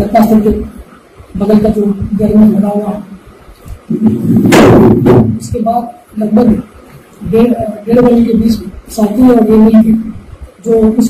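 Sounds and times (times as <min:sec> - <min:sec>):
loud rough burst of noise: 0:03.9 - 0:05.8.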